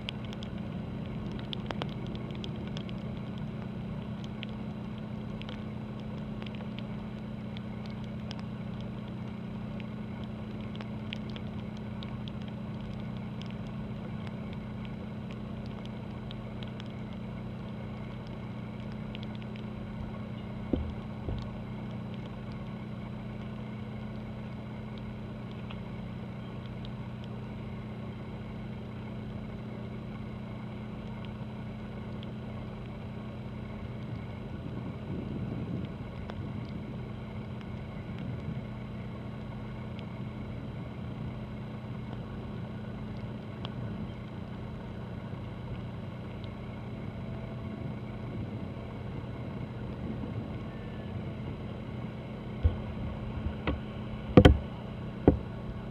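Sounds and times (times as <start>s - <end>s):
low ship engine hum: 0.0s - 55.9s.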